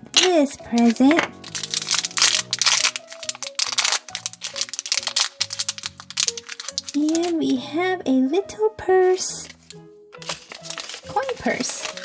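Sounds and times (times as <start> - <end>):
light background music: 0.0 - 12.0
foil wrapper crinkling: 0.8 - 7.4, 9.4 - 12.0.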